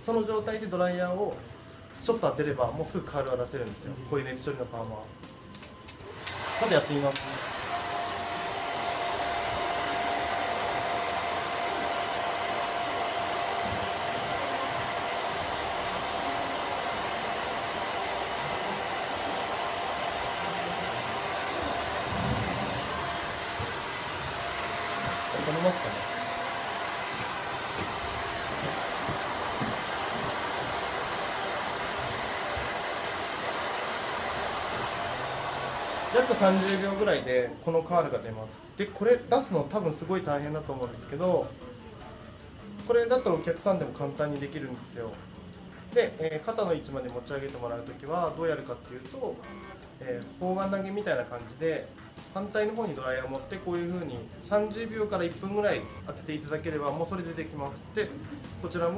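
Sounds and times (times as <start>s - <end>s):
hair dryer blowing: 5.9s - 38.0s.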